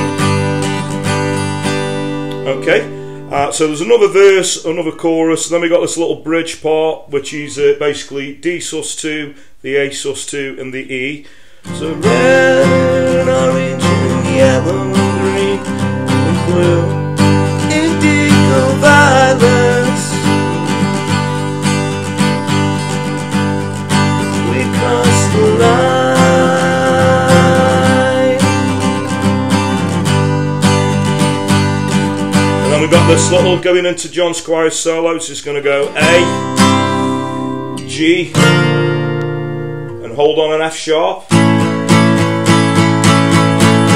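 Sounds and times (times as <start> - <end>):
acoustic guitar strumming: 0.0 - 6.0, 10.9 - 43.9.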